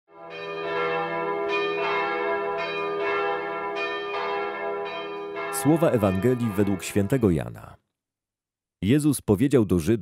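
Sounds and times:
bells ringing: 0.2s - 7.6s.

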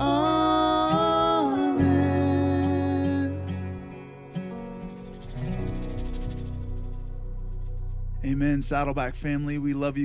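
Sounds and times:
acoustic guitar: 0.0s - 9.9s
fast high shimmer: 3.9s - 8.1s.

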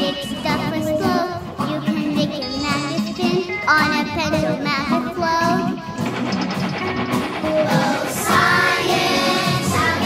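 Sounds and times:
child singing with vibrato: 0.0s - 6.1s, 7.4s - 10.0s
instrumental backing music: 0.0s - 10.0s.

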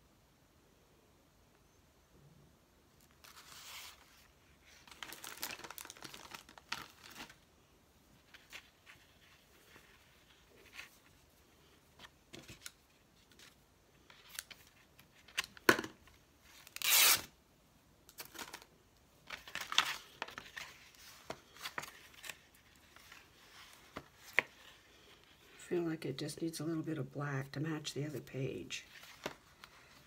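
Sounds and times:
fabric and paper rustling: 3.0s - 7.5s, 8.1s - 15.6s, 18.2s - 25.6s, 28.1s - 30.0s
short loud tearing: 16.8s - 17.3s.

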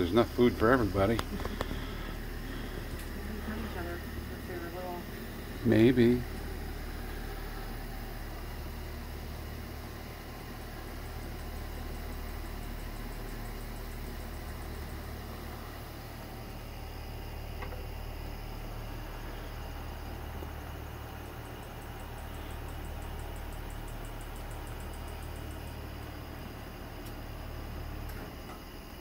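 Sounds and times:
low mechanical hum: 0.0s - 29.0s.

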